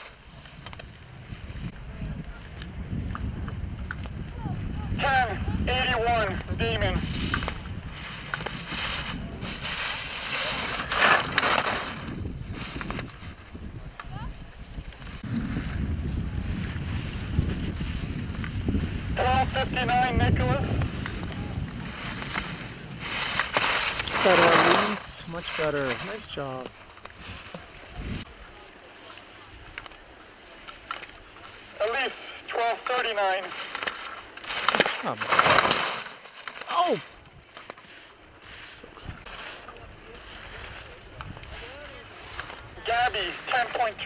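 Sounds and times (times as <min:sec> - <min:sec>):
skis scraping packed snow: 0:00.0 - 0:01.7, 0:05.0 - 0:44.0
wind rumbling on microphone: 0:00.0 - 0:28.7, 0:38.3 - 0:42.9
voices speaking: 0:04.2 - 0:12.0, 0:19.1 - 0:37.6, 0:38.7 - 0:44.0.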